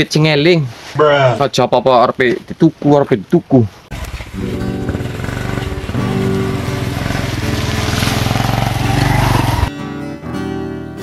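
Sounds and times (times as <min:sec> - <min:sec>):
small motorbike engine running: 0:03.9 - 0:09.7
plucked acoustic guitar music: 0:03.9 - 0:11.0.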